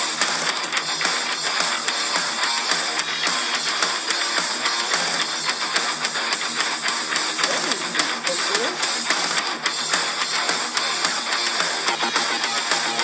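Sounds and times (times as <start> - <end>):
rock song with electric guitars: 0.0 - 13.0.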